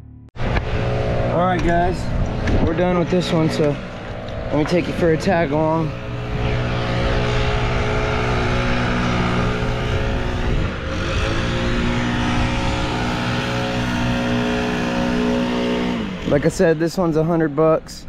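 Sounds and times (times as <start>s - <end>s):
engine running steadily: 0.4s - 18.0s.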